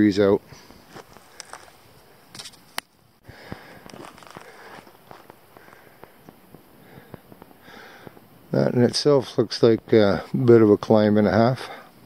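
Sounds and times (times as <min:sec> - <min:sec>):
faint footsteps on rocky ground: 0:00.3 - 0:08.3
small clicks of stones: 0:00.9 - 0:05.8.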